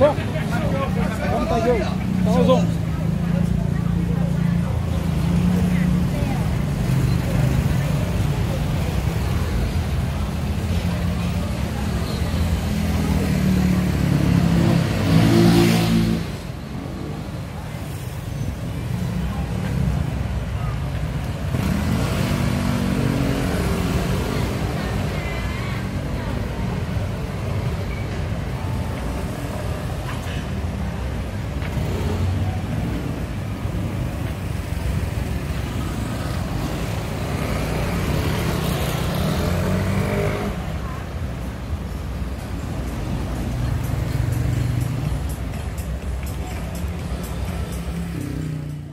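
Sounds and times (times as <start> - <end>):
scooters and cars passing: 0.0 - 48.9.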